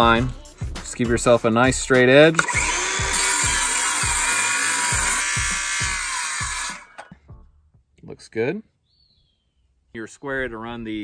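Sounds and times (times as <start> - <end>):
circular saw cutting wood: 2.2 - 7.1.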